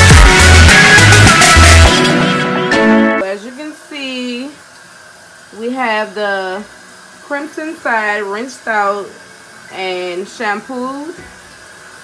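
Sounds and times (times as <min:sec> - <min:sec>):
music track: 0:00.0 - 0:03.3.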